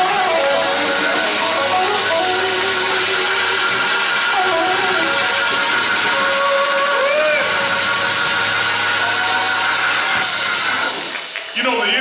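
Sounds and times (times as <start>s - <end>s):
congregation noise: 0.0s - 12.0s
gospel praise music: 0.0s - 12.0s.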